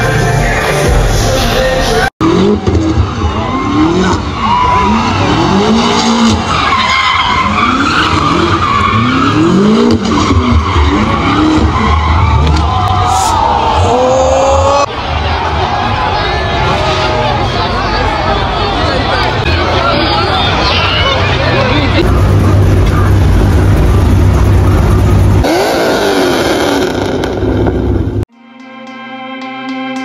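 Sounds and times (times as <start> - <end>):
car engine revving: 1.8 - 15.0, 16.6 - 28.3
tyres squealing on pavement: 2.8 - 13.7, 16.3 - 22.2.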